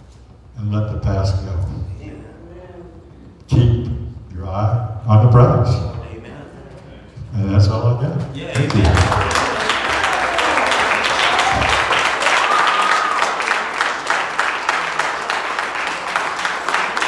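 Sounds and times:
crowd applauding: 8.4 - 17.0.

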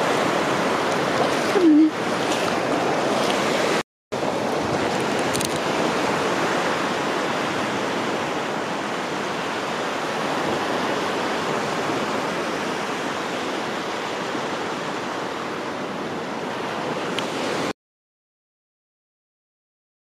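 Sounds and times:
surf breaking on a beach: 0.0 - 17.7.

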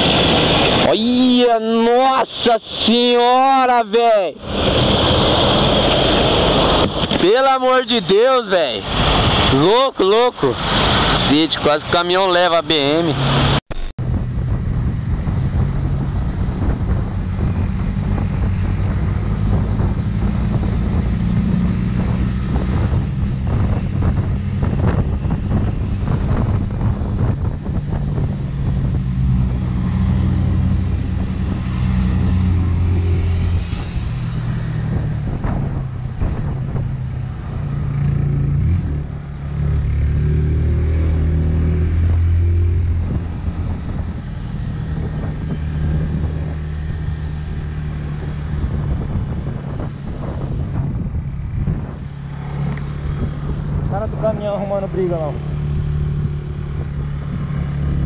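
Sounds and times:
wind noise: 0.0 - 3.5, 4.1 - 12.4, 13.2 - 58.0
road noise: 0.0 - 58.0.

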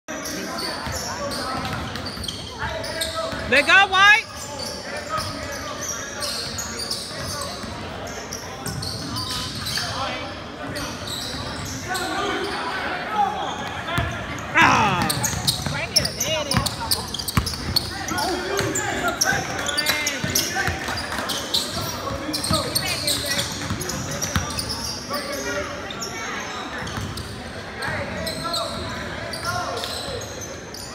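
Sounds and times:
spectators chattering: 0.1 - 30.9
sneakers squeaking: 0.2 - 30.9.

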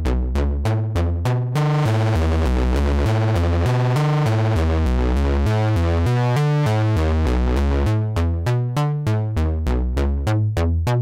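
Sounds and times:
synthesizer low note sequence: 0.0 - 11.0.

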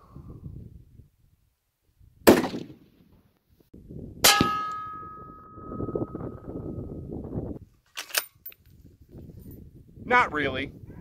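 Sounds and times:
rifle shot: 2.2 - 3.0
bullet clanging on metal target: 4.3 - 5.8.

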